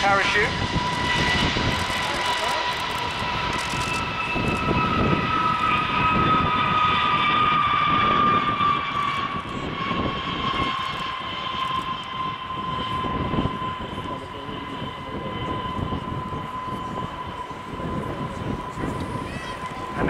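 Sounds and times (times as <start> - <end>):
jet engines whining: 0.0 - 20.0.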